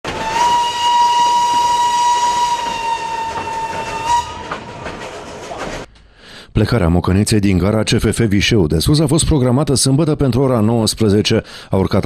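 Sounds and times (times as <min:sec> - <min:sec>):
train carriages rattling on track: 0:00.0 - 0:05.9
steam locomotive whistle blast: 0:00.1 - 0:04.8.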